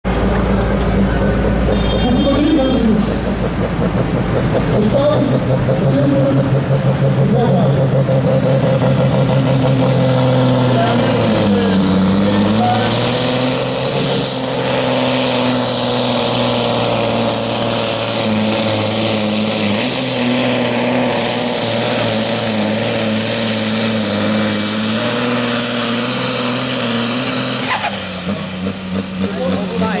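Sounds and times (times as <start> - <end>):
diesel tractor engine at full throttle: 0.0 - 30.0.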